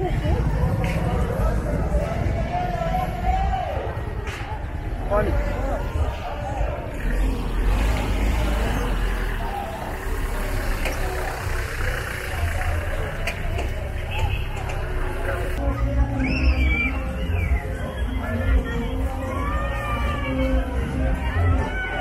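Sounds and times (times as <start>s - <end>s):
low rumble of vehicles: 0.0s - 22.0s
street crowd voices: 0.0s - 22.0s.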